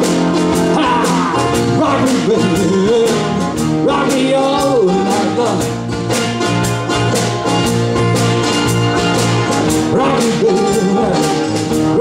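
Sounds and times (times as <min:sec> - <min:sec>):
live blues band playing: 0:00.0 - 0:12.0.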